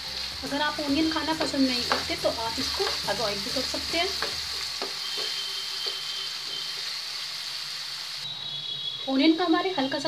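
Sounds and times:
onion sizzling in hot oil: 0:00.0 - 0:10.0.

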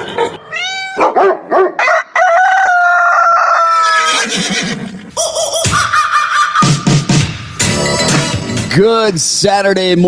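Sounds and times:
rooster crowing: 0:01.6 - 0:04.3.

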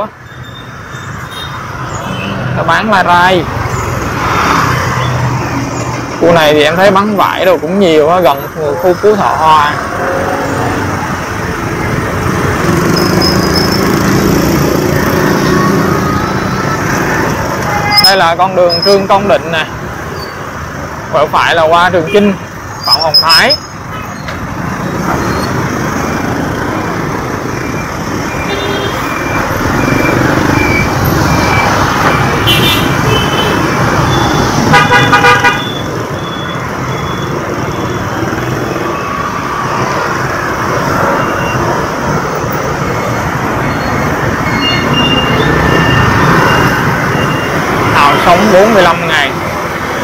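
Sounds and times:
city street traffic: 0:00.0 - 0:50.0
car horns tooting: 0:17.4 - 0:19.0, 0:28.4 - 0:30.0, 0:30.6 - 0:38.0
loud horn honk: 0:28.5 - 0:29.1, 0:32.4 - 0:33.6, 0:34.7 - 0:35.8.

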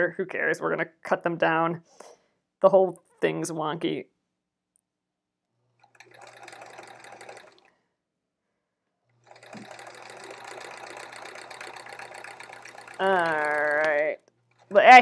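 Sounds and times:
sewing machine stitching: 0:05.7 - 0:07.8, 0:09.1 - 0:15.0.

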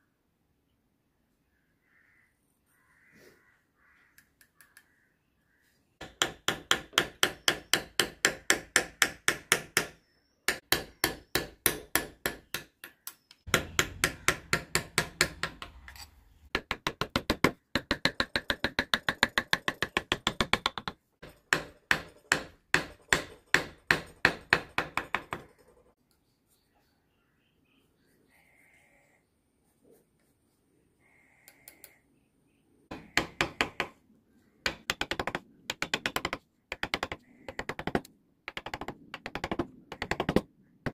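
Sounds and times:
chisel tapping into wood: 0:34.6 - 0:40.4.

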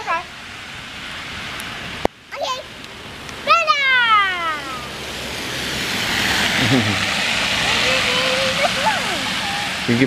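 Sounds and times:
car tyres hissing on wet road: 0:00.0 - 0:10.0
child calling out: 0:03.4 - 0:04.9, 0:07.7 - 0:09.5.

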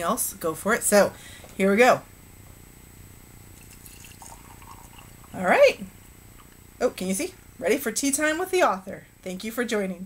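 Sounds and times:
tea pouring into a mug: 0:03.6 - 0:05.4.

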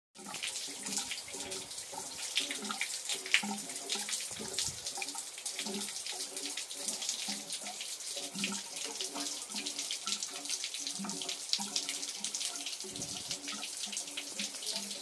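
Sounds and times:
water trickling into stone basin: 0:00.2 - 0:15.0.

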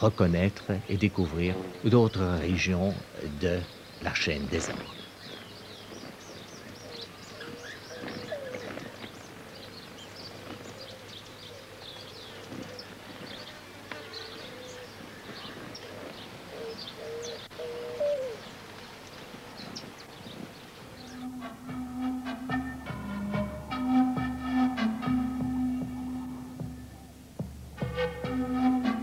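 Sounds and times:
birds chirping and twittering: 0:00.0 - 0:29.0
hummingbird wings buzzing: 0:01.3 - 0:01.9, 0:12.3 - 0:16.4.

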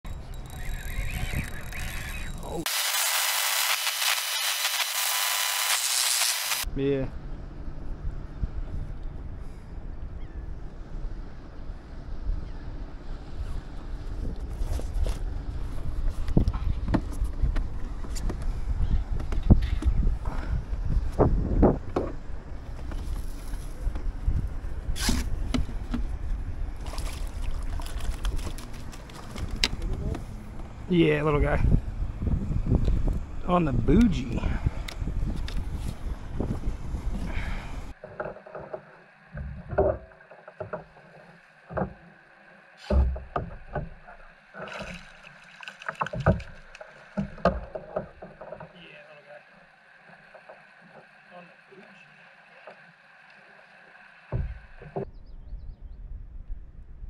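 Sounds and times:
faint squeaks: 0:00.1 - 0:02.6
water against a kayak: 0:00.1 - 0:02.7, 0:11.3 - 0:33.2, 0:34.2 - 0:55.1
wind buffeting microphone: 0:13.2 - 0:28.7, 0:29.3 - 0:37.9
water splashes: 0:26.8 - 0:29.4, 0:43.2 - 0:54.8.

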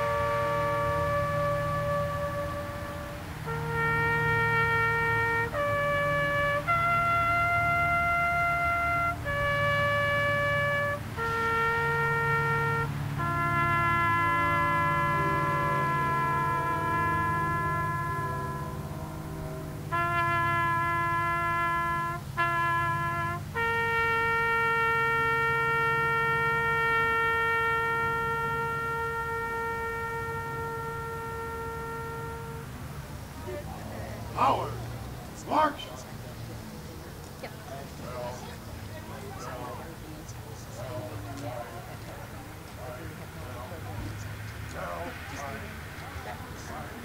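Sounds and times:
solo wind instrument tune: 0:00.0 - 0:36.1, 0:37.8 - 0:47.0.

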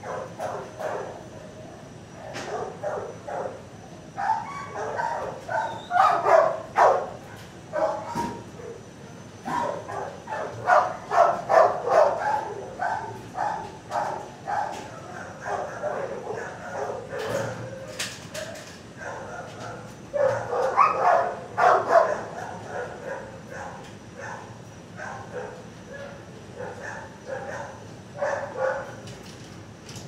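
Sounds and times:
dogs barking: 0:00.0 - 0:01.3, 0:02.1 - 0:29.2.

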